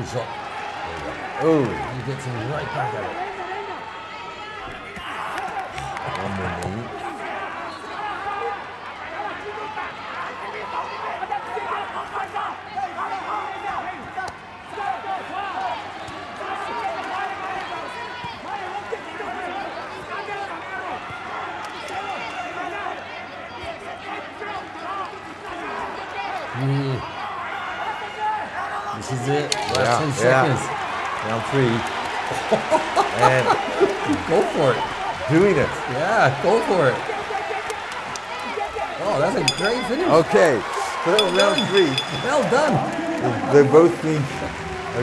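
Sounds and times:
voices shouting: 25.8s - 43.4s.

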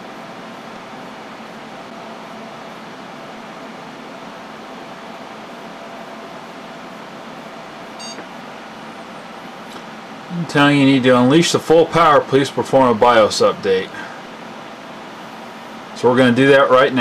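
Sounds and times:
computer cooling fans running: 0.0s - 17.0s
short high beep: 8.0s - 8.2s.

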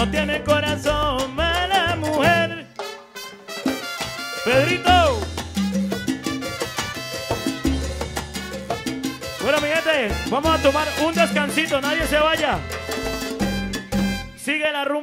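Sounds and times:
steady bass line: 0.0s - 2.6s, 4.5s - 6.6s, 7.4s - 14.4s
salsa band playing: 0.0s - 14.5s
lead melody with sliding notes: 3.7s - 14.4s.

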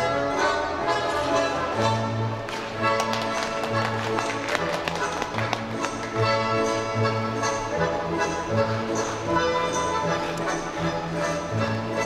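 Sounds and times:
orchestral music over loudspeakers: 0.0s - 12.0s.

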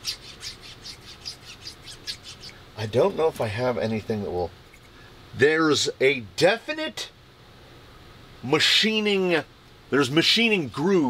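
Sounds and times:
piston scraping squeakily: 0.0s - 2.6s.

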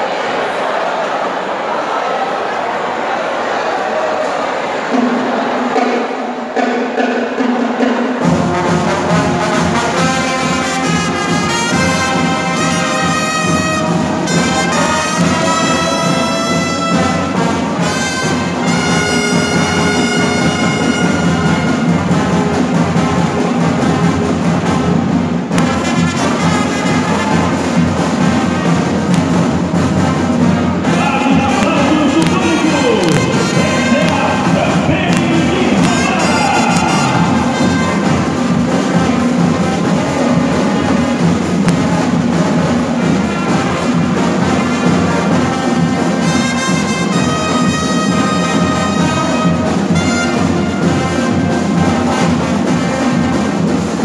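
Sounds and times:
marching brass band playing: 4.9s - 54.0s.

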